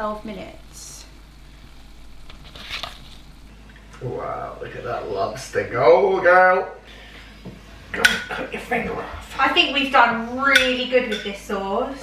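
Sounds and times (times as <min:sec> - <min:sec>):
water boiling in a pot: 0:00.0 - 0:06.8
steady low hum: 0:00.0 - 0:12.0.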